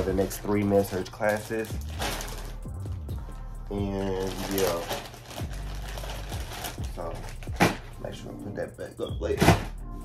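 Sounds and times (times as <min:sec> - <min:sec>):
plastic bag rustling: 0:00.0 - 0:02.6, 0:03.9 - 0:07.9.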